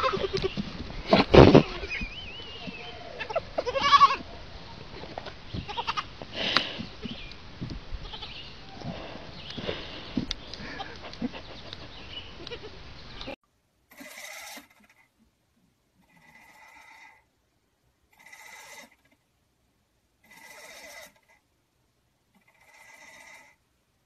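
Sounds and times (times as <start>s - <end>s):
goat kids bleating: 0.0s - 15.0s, 16.0s - 17.2s, 18.1s - 19.1s, 20.2s - 21.4s, 22.4s - 23.6s
steady outdoor hiss: 0.0s - 24.0s.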